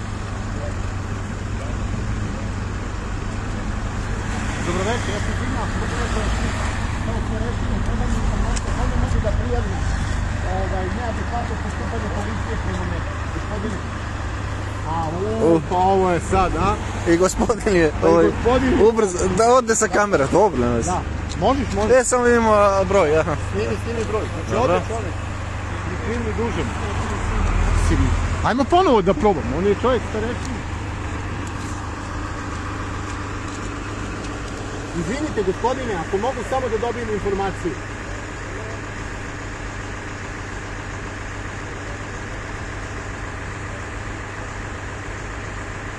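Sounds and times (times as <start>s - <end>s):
car engine idling: 0.0s - 45.9s
road traffic rumble: 0.0s - 45.9s.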